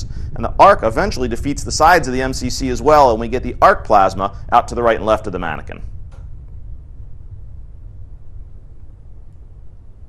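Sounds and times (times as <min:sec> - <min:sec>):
low bass rumble: 0:00.0 - 0:10.0.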